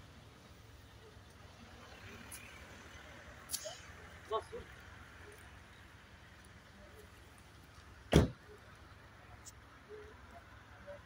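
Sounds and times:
loud sharp thump: 8.1s - 8.4s.

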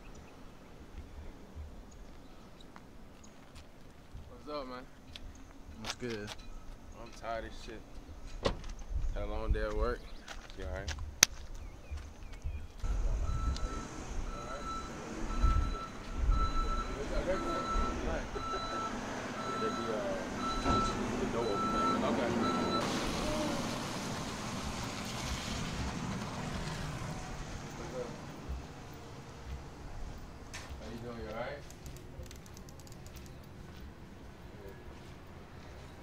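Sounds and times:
car door slamming: 8.4s - 8.7s
vehicle reversing alarm beeping: 12.8s - 23.0s.

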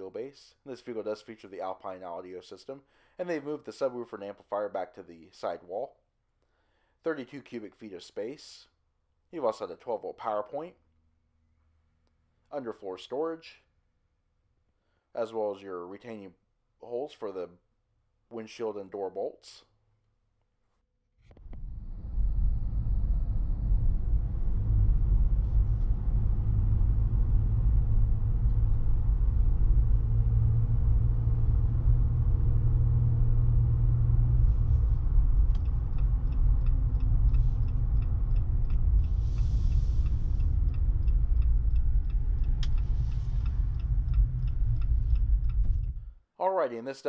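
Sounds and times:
engine and road noise rumble: 21.3s - 46.2s
light ticking: 27.4s - 46.2s.

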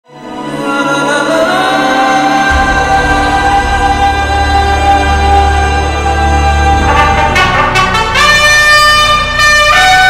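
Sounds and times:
low musical accompaniment: 0.1s - 10.0s
trumpet playing a long note: 1.7s - 10.0s.

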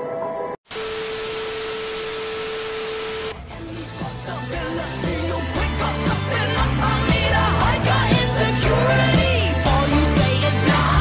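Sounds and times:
television static hiss: 0.7s - 3.4s
steady test tone: 0.7s - 4.8s
music: 3.4s - 11.0s.

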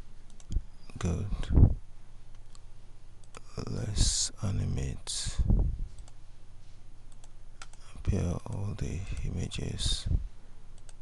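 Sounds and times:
faint low hum: 0.0s - 11.0s
computer mouse clicks: 6.0s - 6.2s, 7.1s - 7.8s.

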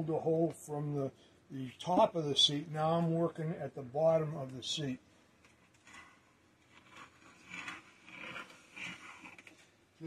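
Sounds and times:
reamer scraping wood: 5.8s - 9.6s.

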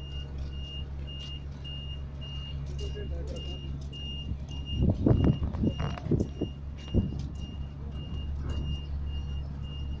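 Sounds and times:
electronic warning beeps: 0.0s - 10.0s
low steady rumble: 0.0s - 10.0s.

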